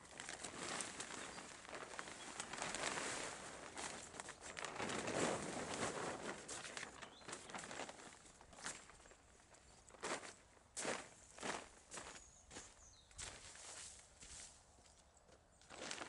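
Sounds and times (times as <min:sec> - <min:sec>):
footsteps on stones and plastic netting: 0:00.0 - 0:16.0.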